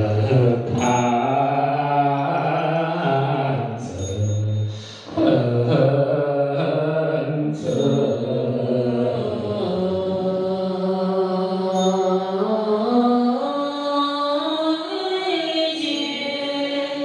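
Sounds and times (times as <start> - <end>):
congregation chanting in unison: 0.0 - 4.4, 5.1 - 13.2.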